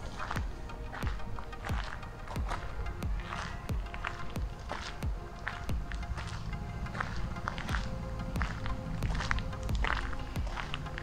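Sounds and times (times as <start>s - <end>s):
background music: 0.0s - 11.0s
footsteps on gravel: 0.0s - 11.0s.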